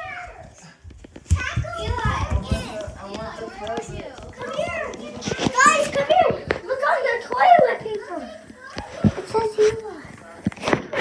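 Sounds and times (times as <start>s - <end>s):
child's loud high voice: 0.0s - 0.7s
children chattering: 0.0s - 11.0s.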